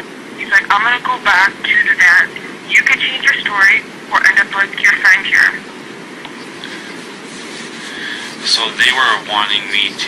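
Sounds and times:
background rumble and hiss: 0.0s - 10.0s.

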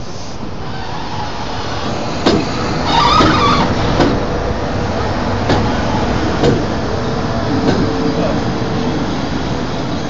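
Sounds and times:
train rolling past: 0.0s - 10.0s
high squeal: 0.7s - 3.9s.

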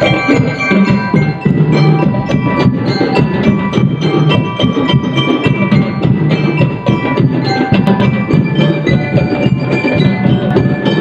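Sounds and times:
bell lyre melody: 0.0s - 11.0s
drum beat: 0.0s - 11.0s.

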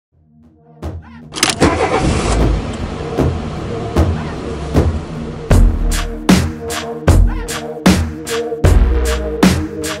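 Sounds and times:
car engine starting and revving: 1.4s - 6.5s.

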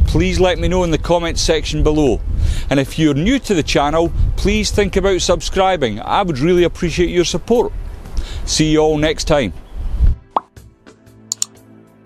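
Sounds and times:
rising bloop pop: 10.3s - 10.5s
quick clicks: 11.3s - 11.6s.

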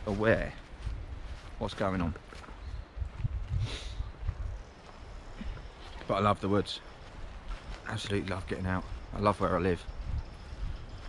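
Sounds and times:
footsteps on woodland track: 0.0s - 11.0s
wind rumbling on microphone: 0.0s - 11.0s.

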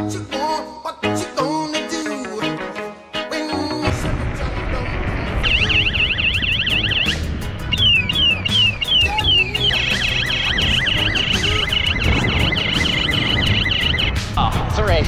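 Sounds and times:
music with heavy bass beat: 3.9s - 15.0s
electronic siren: 5.4s - 14.3s.

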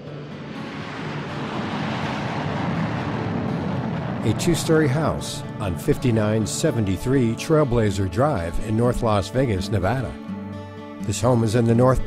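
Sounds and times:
rushing whoosh: 0.0s - 6.2s.

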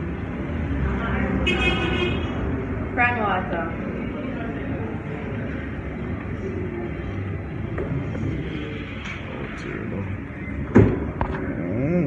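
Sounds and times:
low rumble of traffic: 0.0s - 12.0s
vehicle horn toot: 1.4s - 2.4s.

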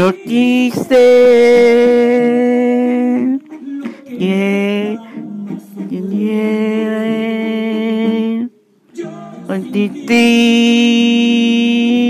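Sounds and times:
person singing a long note: 0.0s - 8.5s, 9.5s - 12.0s.

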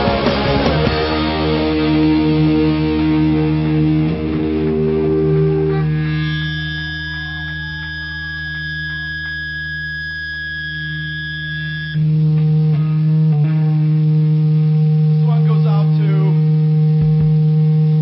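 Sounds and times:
amp hum: 0.0s - 18.0s
electric guitar ringing tone: 0.0s - 18.0s
faint guitar notes: 0.0s - 18.0s.

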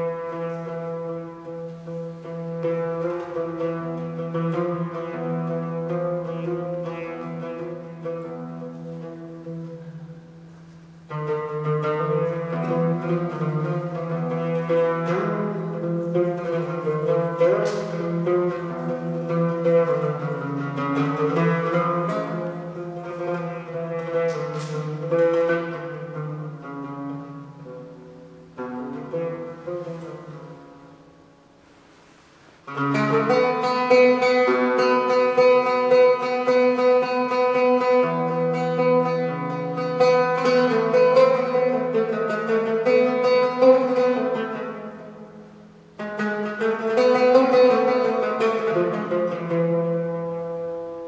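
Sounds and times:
oud: 0.0s - 51.0s.

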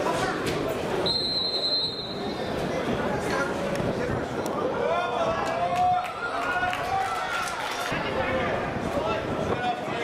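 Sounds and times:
stadium ambience: 0.0s - 10.0s.

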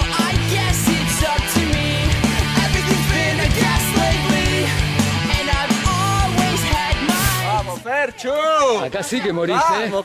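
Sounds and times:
rock music with electric guitar: 0.0s - 7.8s
man shouting encouragement: 7.4s - 10.0s.

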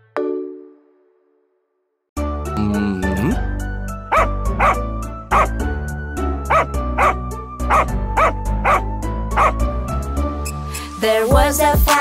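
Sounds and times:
cheerful children's music: 2.2s - 12.0s
dog barking: 4.1s - 5.6s, 6.5s - 9.6s.

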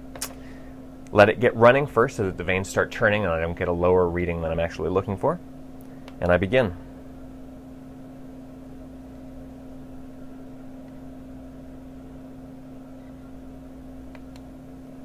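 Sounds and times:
exhaust fan motor hum: 0.0s - 15.0s.

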